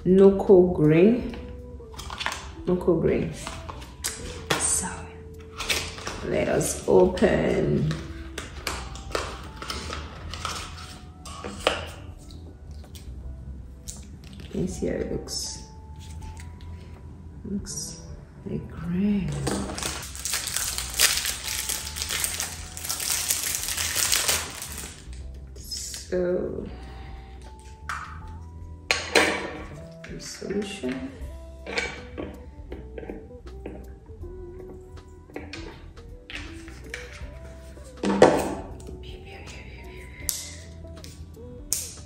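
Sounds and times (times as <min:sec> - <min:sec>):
soft background music: 0:00.0 - 0:42.0
plastic blister pack crinkling: 0:19.4 - 0:25.2.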